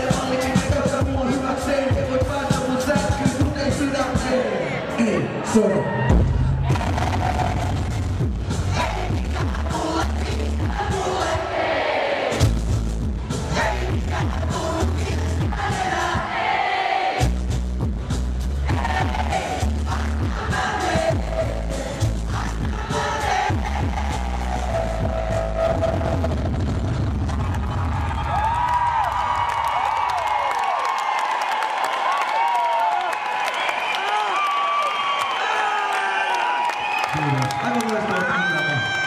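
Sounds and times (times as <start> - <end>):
hip-hop beat over arena speakers: 0.0 - 30.5, 33.2 - 39.0
crowd cheering and screaming: 4.3 - 8.0, 22.9 - 39.0.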